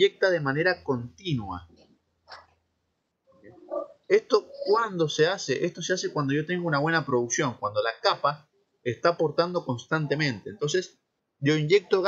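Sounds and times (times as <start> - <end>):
vocal hesitation: 3.4 - 5.4.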